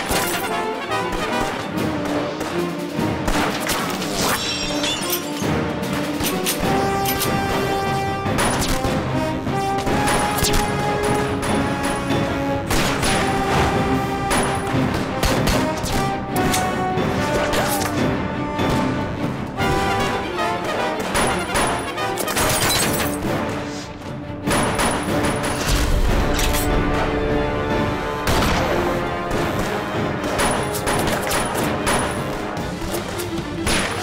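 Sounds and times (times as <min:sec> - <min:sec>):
gunshots and impacts: 0:00.0 - 0:04.8, 0:05.5 - 0:18.0, 0:18.6 - 0:23.6, 0:24.4 - 0:34.0
dramatic film score: 0:00.0 - 0:34.0.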